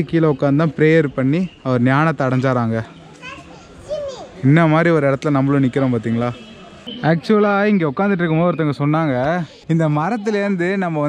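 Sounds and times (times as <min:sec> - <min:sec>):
man talking: 0:00.0 - 0:02.9, 0:04.4 - 0:11.0
background voices of people and children: 0:00.0 - 0:11.0.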